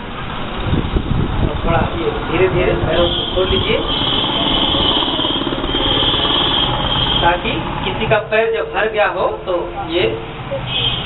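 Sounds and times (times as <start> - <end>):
rapid machine-like rattle: 2.4 - 7.2.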